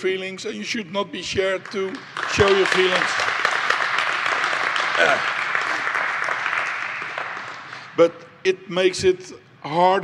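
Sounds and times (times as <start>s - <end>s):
audience applauding: 1.6s - 8.0s.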